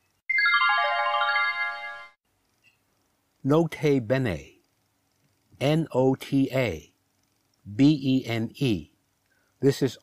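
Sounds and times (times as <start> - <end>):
descending run of ringing notes: 0.3 - 2.2.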